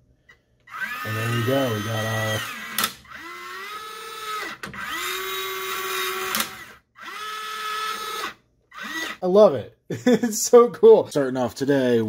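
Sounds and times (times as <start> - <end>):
servo motor whining: 0.7 - 9.2.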